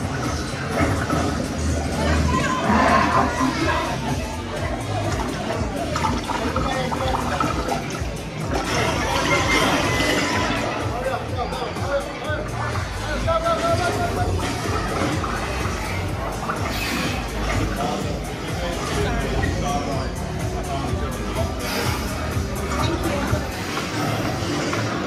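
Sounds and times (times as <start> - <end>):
background music: 0.0 - 25.0
indistinct chatter: 0.0 - 25.0.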